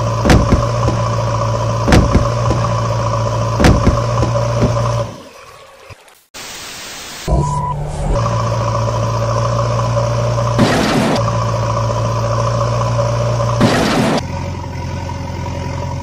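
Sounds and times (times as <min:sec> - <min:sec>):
truck engine idling: 0:00.0 - 0:05.2, 0:07.6 - 0:16.0.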